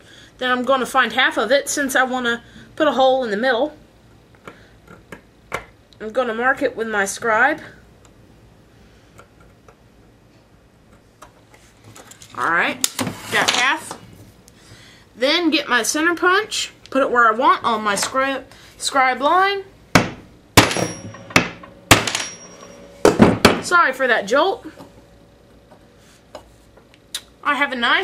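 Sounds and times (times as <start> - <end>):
low steady hum: 0.0 - 28.0
hammer striking metal punch: 20.0 - 23.7
steel scribe scratching metal: 22.2 - 23.1.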